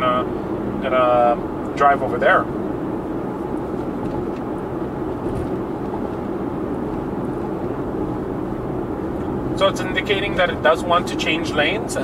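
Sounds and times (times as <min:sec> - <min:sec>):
tyre and wind noise in car: 0:00.0 - 0:12.0.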